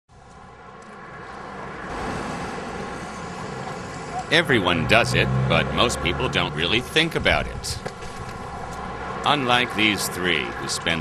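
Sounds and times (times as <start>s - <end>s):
traffic rumble: 0.1s - 11.0s.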